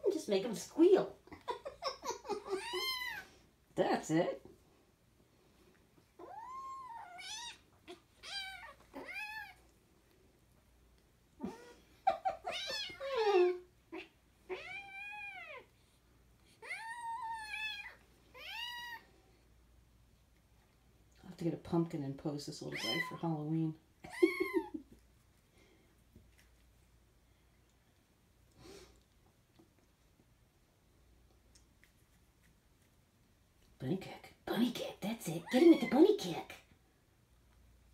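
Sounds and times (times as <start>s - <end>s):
kitten mewing: 2.2s - 3.3s
kitten squealing: 2.2s - 3.3s, 6.2s - 9.6s, 11.4s - 15.7s, 16.6s - 19.0s, 22.7s - 23.2s.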